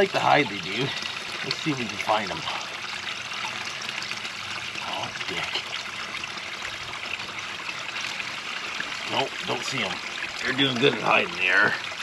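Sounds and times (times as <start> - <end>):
waterfall trickling over stone: 0.0 - 12.0.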